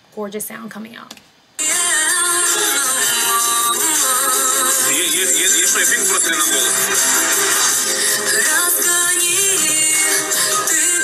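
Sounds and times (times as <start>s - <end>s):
musical backing track: 1.6s - 11.0s
woman singing: 1.6s - 11.0s.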